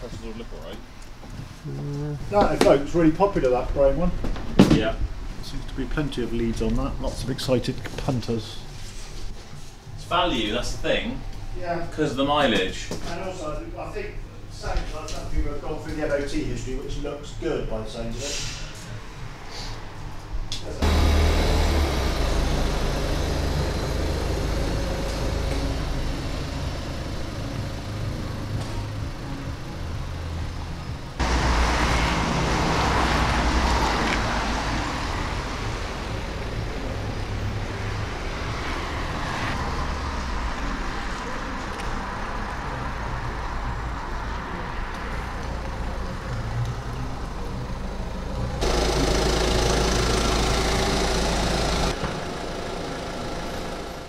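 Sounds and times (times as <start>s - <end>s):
car engine running: 20.8s - 32.5s, 47.4s - 54.0s
vehicle engine idling: 20.8s - 38.6s, 45.6s - 54.0s
tyre noise on wet road: 20.8s - 54.0s.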